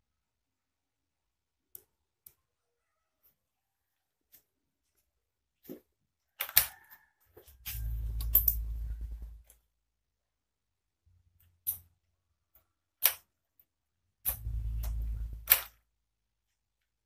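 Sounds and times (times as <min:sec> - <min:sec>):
sharp clicks and rattling: 0:07.7 - 0:09.6, 0:14.3 - 0:15.8
low rumble: 0:07.8 - 0:09.4, 0:14.4 - 0:15.5.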